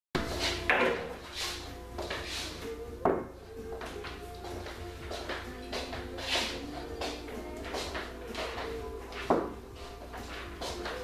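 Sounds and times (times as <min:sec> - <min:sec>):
faint background music: 0:00.2 - 0:11.0.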